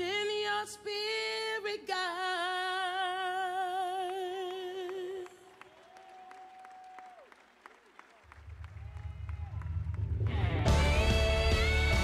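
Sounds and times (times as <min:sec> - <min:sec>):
scattered clapping: 0:04.1 - 0:10.5
low bass swell: 0:08.6 - 0:12.0.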